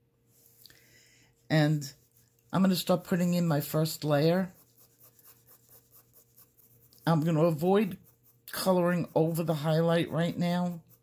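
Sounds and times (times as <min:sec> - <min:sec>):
pencil scratching on paper: 0:01.8 - 0:11.0.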